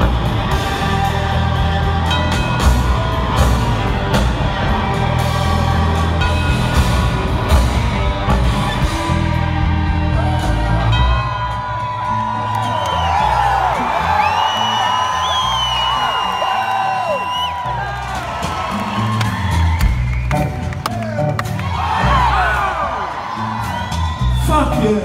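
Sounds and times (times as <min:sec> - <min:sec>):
crowd whooping and cheering: 0:00.0 - 0:25.0
live rock band playing: 0:00.0 - 0:25.0.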